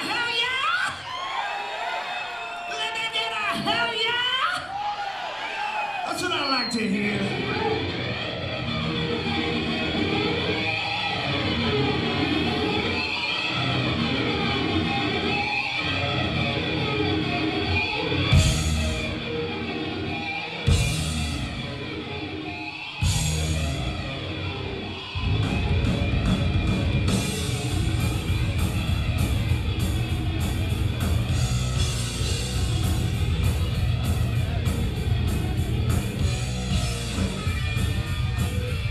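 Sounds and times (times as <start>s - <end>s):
hard rock band playing: 6.2s - 38.9s
distorted electric guitar: 6.9s - 38.9s.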